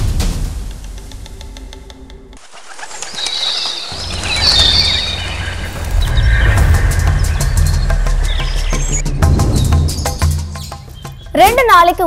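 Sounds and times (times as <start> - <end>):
birds chirping: 2.4 - 12.0
low rumble: 3.9 - 10.0.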